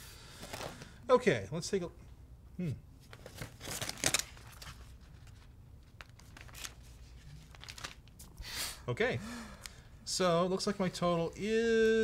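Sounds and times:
low steady room hum: 0:00.0 - 0:12.0.

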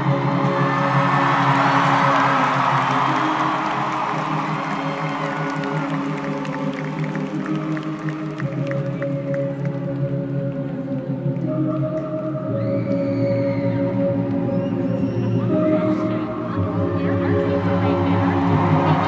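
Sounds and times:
crowd cheering: 0:00.0 - 0:09.2, 0:17.6 - 0:19.0.

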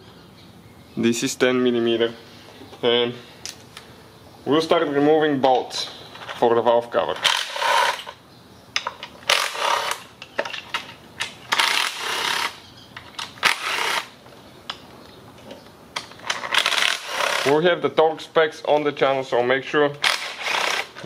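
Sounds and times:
impact driver spinning bolts: 0:08.9 - 0:14.2, 0:16.0 - 0:17.6, 0:20.0 - 0:21.0.

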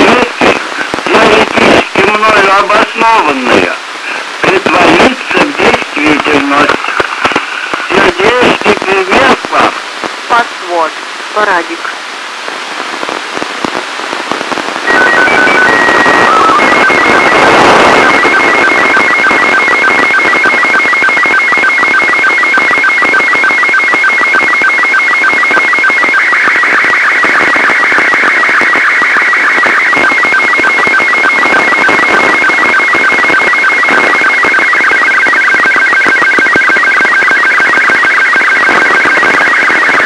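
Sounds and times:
radio hiss: 0:00.0 - 0:40.0
warbling data tones: 0:14.7 - 0:40.0.

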